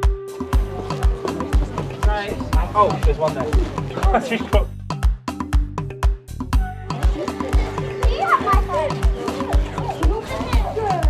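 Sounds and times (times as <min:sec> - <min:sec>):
background music with steady beat: 0:00.0 - 0:11.0
child's voice: 0:07.5 - 0:11.0.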